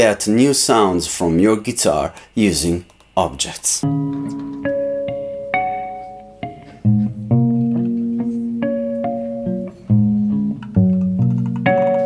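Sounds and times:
prepared electric guitar plucked: 3.8s - 12.0s.

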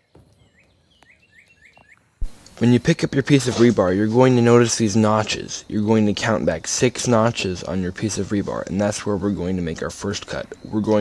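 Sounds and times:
faint bird chirps: 0.0s - 11.0s.

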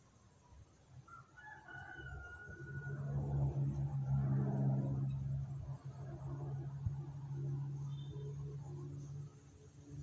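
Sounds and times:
low steady hum: 2.1s - 10.0s.

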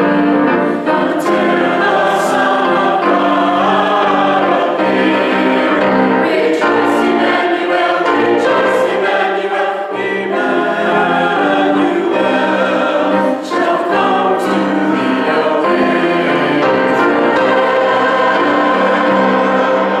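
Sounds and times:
choir singing a hymn: 0.0s - 20.0s
grand piano accompaniment: 0.0s - 20.0s.

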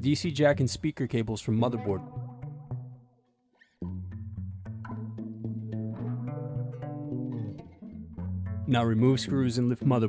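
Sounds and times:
plucked instrumental music: 1.5s - 10.0s.

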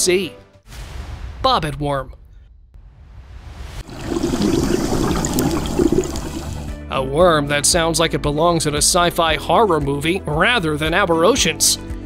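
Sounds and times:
bubbling gurgling water: 3.8s - 6.8s
quiet background music: 5.7s - 12.0s.

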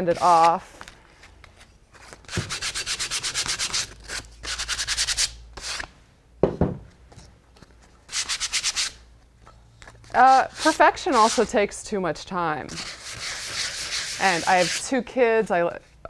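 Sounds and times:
sandpaper rubbing wood: 2.3s - 5.8s, 8.1s - 9.0s, 10.2s - 11.6s, 12.7s - 14.9s.

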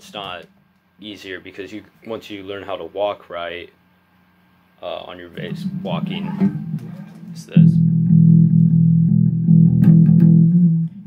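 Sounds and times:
electric bass guitar plucked: 5.4s - 11.0s.

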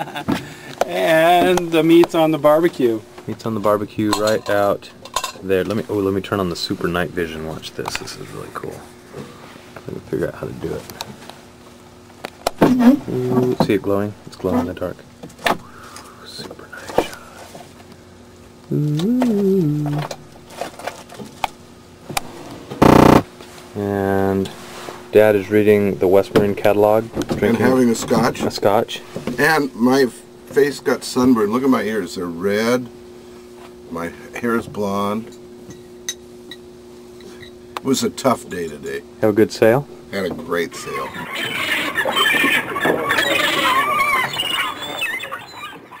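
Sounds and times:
high-pitched squealing laughter: 41.1s - 46.0s.

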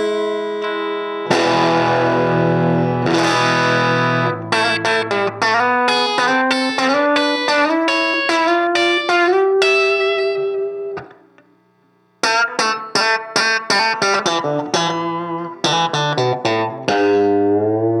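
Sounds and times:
electric guitar chord ringing: 0.0s - 11.4s, 12.2s - 18.0s
electric guitar picked notes: 0.0s - 11.5s, 12.2s - 18.0s.

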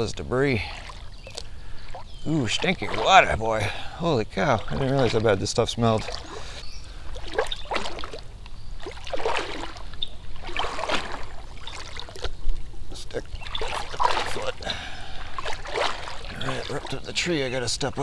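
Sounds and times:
water sloshing around legs: 0.0s - 18.0s.

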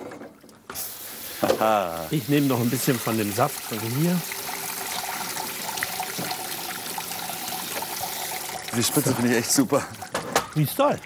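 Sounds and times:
tap water running into metal strainer: 0.7s - 11.0s.

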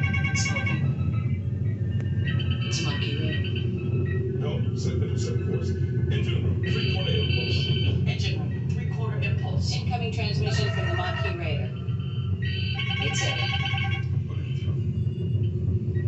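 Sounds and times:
electronic beeps and chirps: 0.0s - 4.3s, 6.4s - 8.1s
low engine hum: 0.0s - 16.0s.

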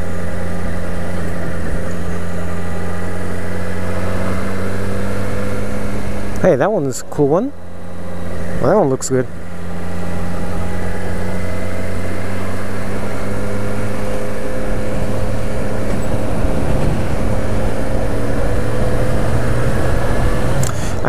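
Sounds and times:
motorcycle engine cruising: 0.0s - 21.0s
wind noise: 14.6s - 21.0s.

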